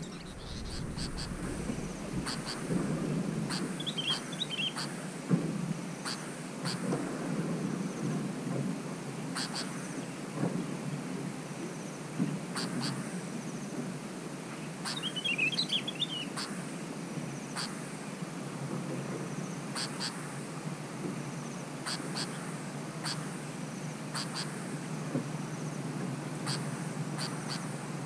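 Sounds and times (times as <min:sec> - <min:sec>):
low background noise: 0:00.0 - 0:28.0
bird two-note calls: 0:03.5 - 0:04.9.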